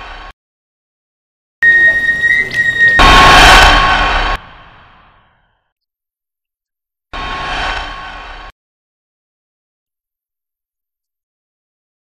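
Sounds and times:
high beep tone: 1.6s - 3.6s
loud noisy hit: 2.8s - 5.3s.

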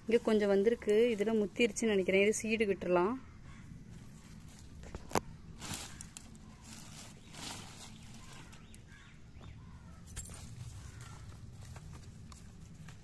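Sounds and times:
low steady hum: 0.0s - 13.0s
hand rustling leaves: 3.9s - 9.0s.

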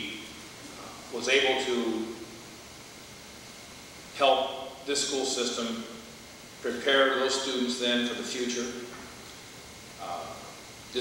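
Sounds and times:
faint room tone hiss: 0.0s - 11.0s.

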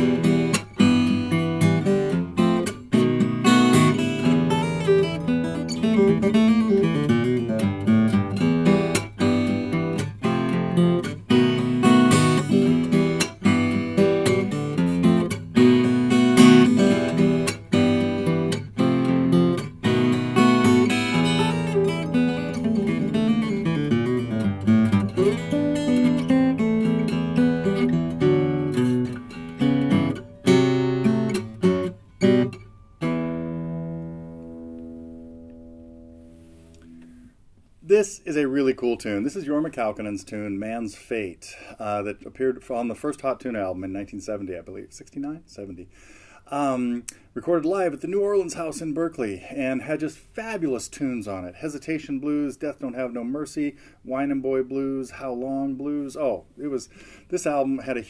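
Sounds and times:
fingerstyle acoustic guitar: 0.0s - 37.6s.

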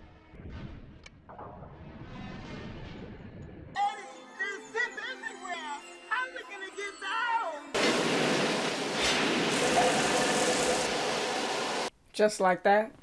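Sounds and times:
loud rushing hiss: 7.8s - 11.9s.

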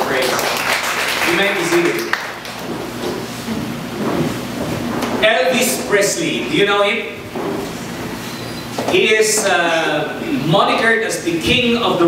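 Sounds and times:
rustle of chairs and bodies: 0.3s - 10.2s.

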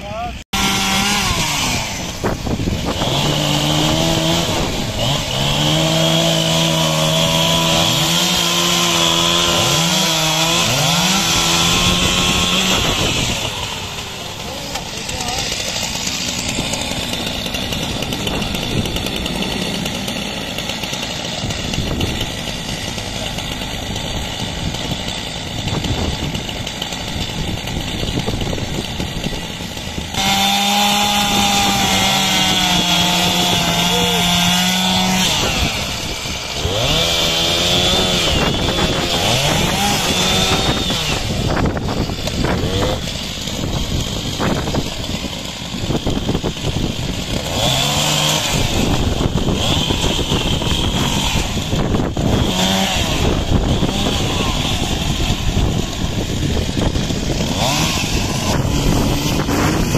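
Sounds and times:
chainsaw cutting branches: 0.0s - 59.9s.

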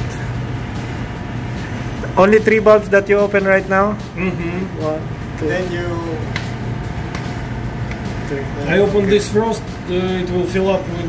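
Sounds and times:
ship machinery and ventilation hum: 0.0s - 11.0s.

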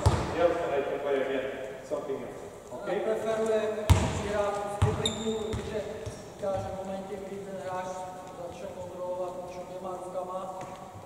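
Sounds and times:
basketball bouncing on hardwood floor: 0.0s - 0.3s, 3.9s - 6.7s
people talking: 0.0s - 10.7s.

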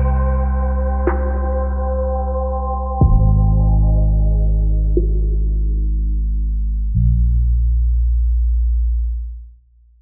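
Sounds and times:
deep steady bass tone: 0.0s - 10.0s.

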